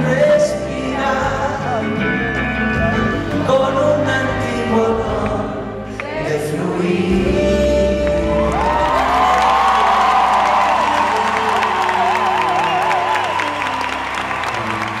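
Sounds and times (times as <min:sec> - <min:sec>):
live band closing chord: 0:00.0 - 0:15.0
audience applause and cheering: 0:08.0 - 0:15.0.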